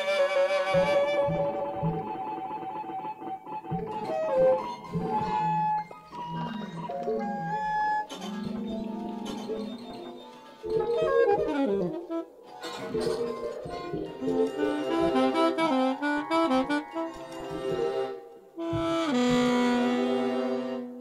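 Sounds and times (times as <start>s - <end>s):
jazz instruments: 0.0s - 21.0s
saxophone playing quick runs: 18.6s - 20.8s.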